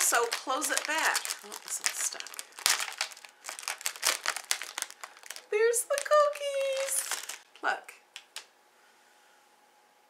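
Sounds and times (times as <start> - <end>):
plastic wrapper crinkling: 0.0 - 8.5.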